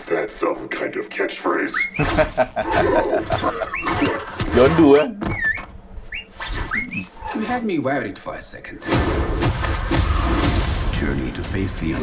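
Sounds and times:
film trailer soundtrack: 0:00.0 - 0:12.0
man laughing heartily: 0:02.0 - 0:03.8.

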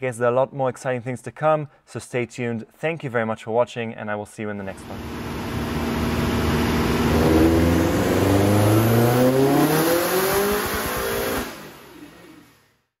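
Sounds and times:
turbocharged car engine revving: 0:04.7 - 0:12.6.

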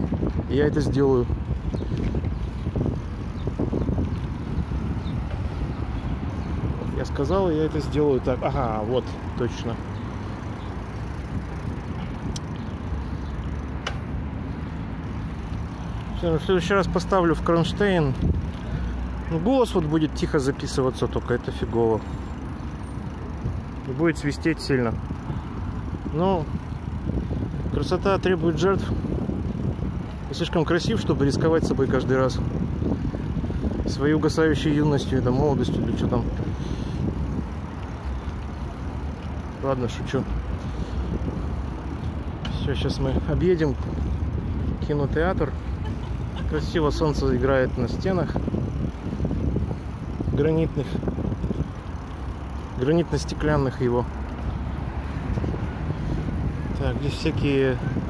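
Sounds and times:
wind buffeting microphone: 0:00.0 - 0:20.4, 0:21.9 - 0:58.0
tyres rolling on asphalt: 0:00.0 - 0:58.0.

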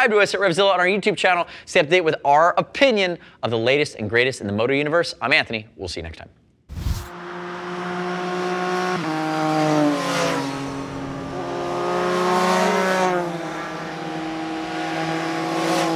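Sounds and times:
motorcycles riding past: 0:07.1 - 0:15.9.

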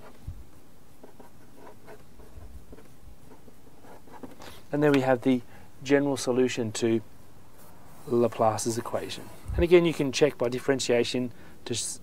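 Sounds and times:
marker scratching on paper: 0:01.0 - 0:04.5.

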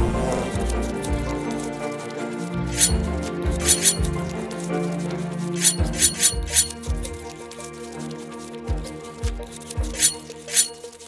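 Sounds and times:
instrumental background music: 0:00.0 - 0:11.0
high squeaky sound effects: 0:02.7 - 0:04.3, 0:05.5 - 0:07.3, 0:09.9 - 0:11.0.

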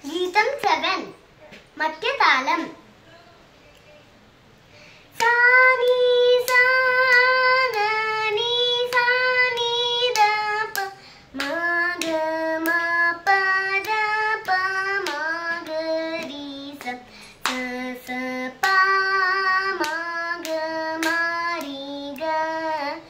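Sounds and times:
girl singing unaccompanied: 0:05.1 - 0:23.0.

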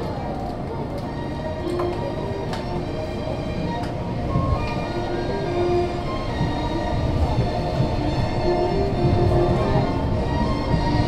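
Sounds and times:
monorail steady low rumble: 0:00.0 - 0:11.0.

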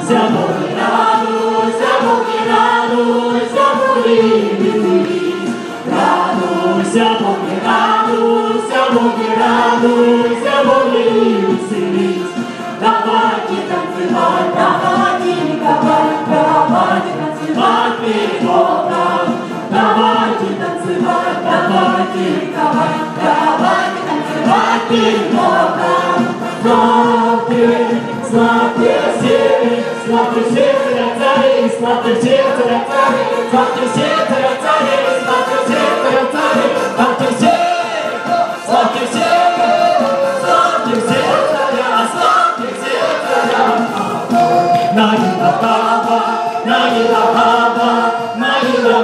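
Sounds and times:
group singing worship song: 0:00.0 - 0:49.0.

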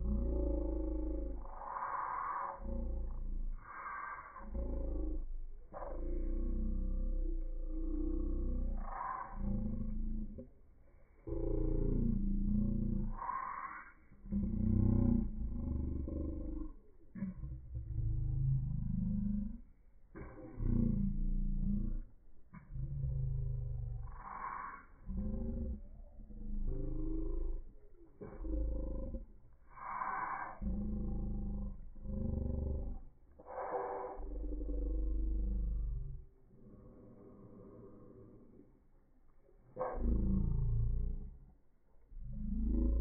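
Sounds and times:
slowed deep rumbling pulses: 0:00.0 - 0:43.0.

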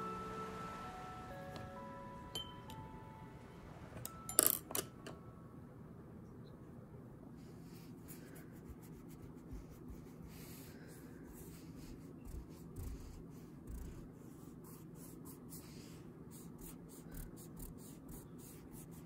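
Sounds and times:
eraser scrubbing on paper: 0:08.1 - 0:19.0.

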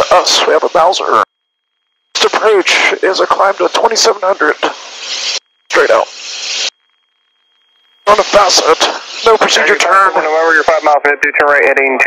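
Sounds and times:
intercom hiss: 0:00.0 - 0:01.2, 0:02.2 - 0:06.7, 0:08.0 - 0:12.0
faint steady high tone: 0:00.0 - 0:11.0.

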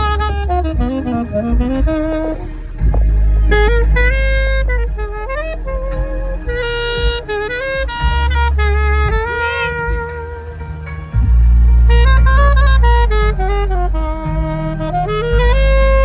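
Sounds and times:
alto saxophone melody: 0:00.0 - 0:16.0
deep bass backing track: 0:00.0 - 0:16.0.

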